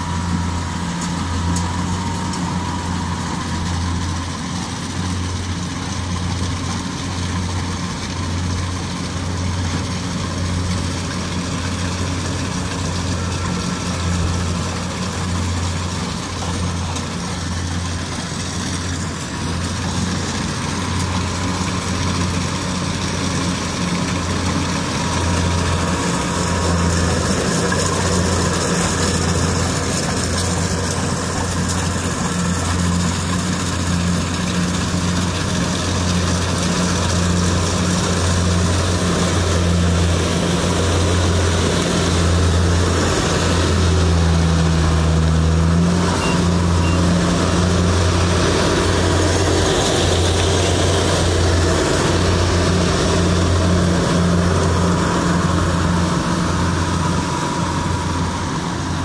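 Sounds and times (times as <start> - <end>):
combine harvester diesel engine: 0.0 - 59.0.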